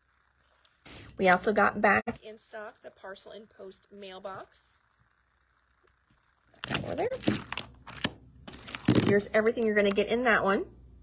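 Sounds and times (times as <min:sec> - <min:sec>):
plastic packaging crinkling: 0:06.5 - 0:10.0.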